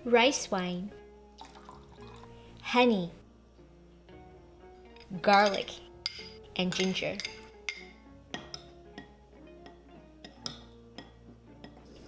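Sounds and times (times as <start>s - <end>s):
quiet plucked background music: 0.0s - 12.0s
metal spoon clinking ceramic bowl: 4.9s - 11.8s.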